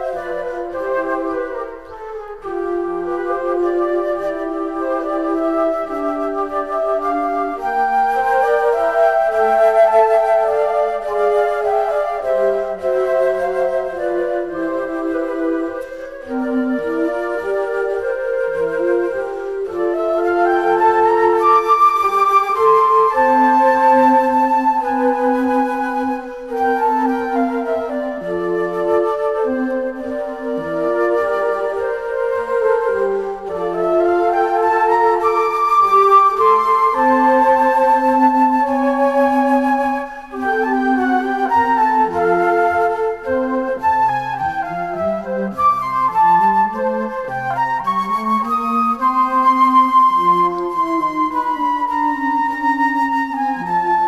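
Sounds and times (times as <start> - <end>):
flute melody: 0.0 - 54.0
piano: 0.0 - 54.0.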